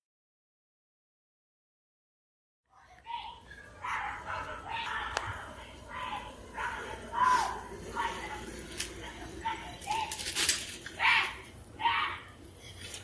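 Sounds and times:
people shouting in an argument: 3.1 - 10.3, 10.9 - 12.4.

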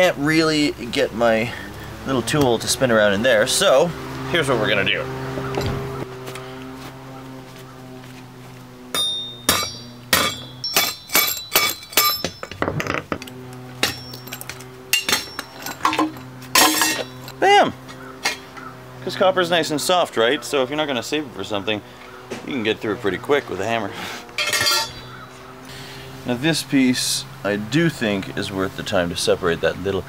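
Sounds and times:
hammer striking metal pipe: 8.9 - 13.0, 13.8 - 17.3, 24.4 - 25.2.

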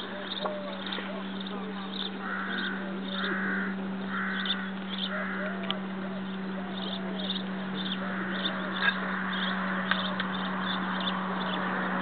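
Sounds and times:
bird cawing: 0.0 - 12.0
steady low hum: 0.0 - 12.0.

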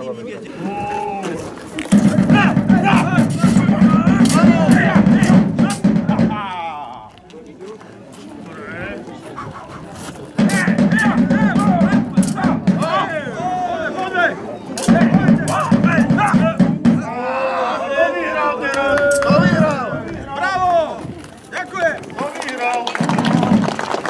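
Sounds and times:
voices: 0.0 - 23.8.

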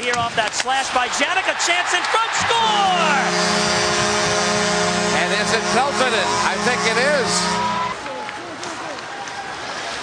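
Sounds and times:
crowd cheering: 0.6 - 10.0
goal horn low tone: 2.6 - 8.0.

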